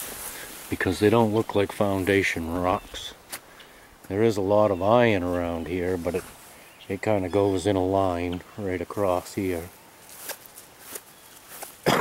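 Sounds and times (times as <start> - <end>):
footsteps through grass: 0.0 - 12.0.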